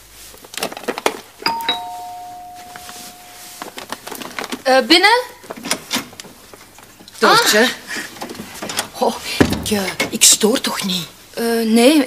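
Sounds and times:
two-tone doorbell chime: 1.5s - 3.9s.

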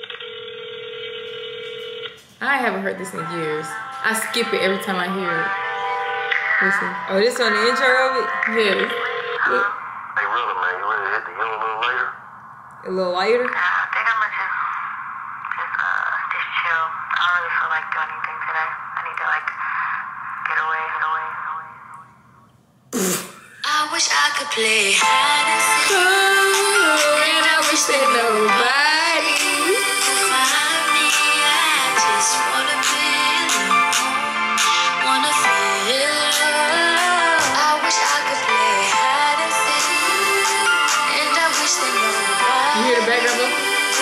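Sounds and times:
phone ringback tone: 0.0s - 9.8s
rap vocals through small speaker: 23.6s - 44.0s.

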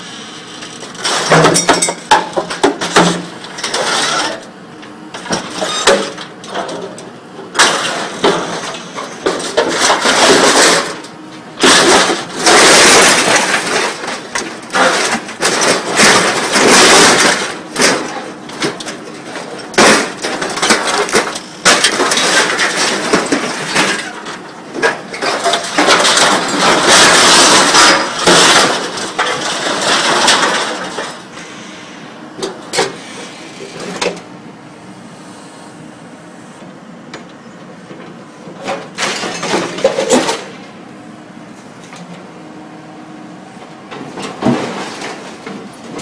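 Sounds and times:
scrap metal grinding scrape: 3.5s - 4.5s
scrap steel clanking: 7.6s - 34.2s.

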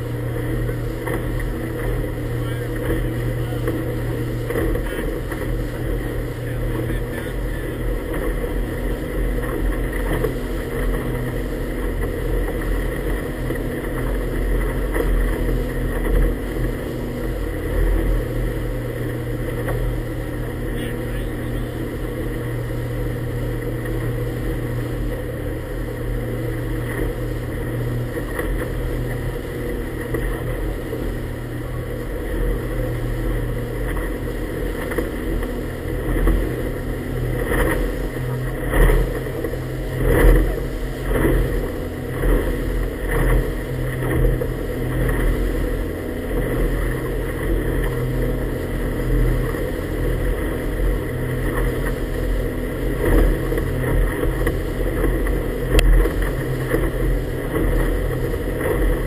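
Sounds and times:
hull slapping on water: 0.0s - 59.0s
motorboat engine humming: 0.0s - 59.0s.

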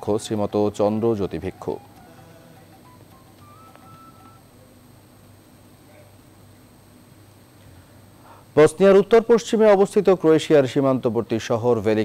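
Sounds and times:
faint room ambience: 0.0s - 12.0s
beeps rising in pitch: 2.3s - 4.5s.

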